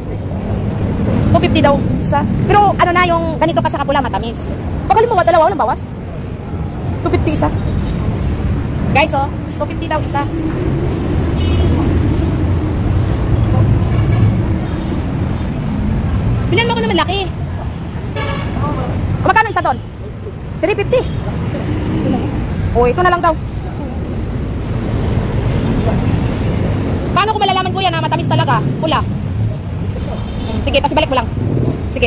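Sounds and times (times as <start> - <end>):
vehicle engine rumble: 0.0 - 32.0
steady low rumble: 8.4 - 17.2.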